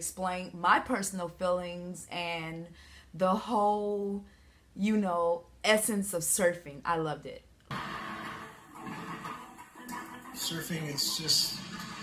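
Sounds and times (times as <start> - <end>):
quiet music: 7.7 - 12.0.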